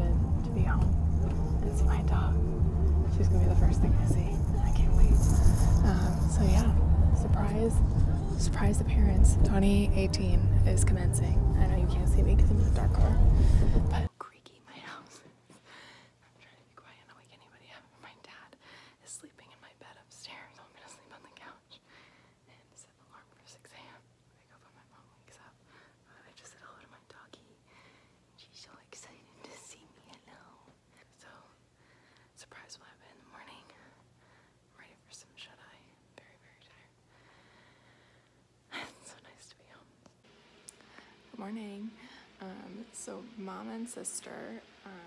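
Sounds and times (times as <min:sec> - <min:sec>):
woman whispering: 0:00.0 - 0:15.2, 0:16.2 - 0:21.8, 0:22.5 - 0:27.6, 0:28.4 - 0:31.6, 0:32.4 - 0:34.0, 0:34.7 - 0:37.0, 0:38.7 - 0:40.0, 0:41.4 - 0:45.0
faint low hum: 0:00.0 - 0:45.0.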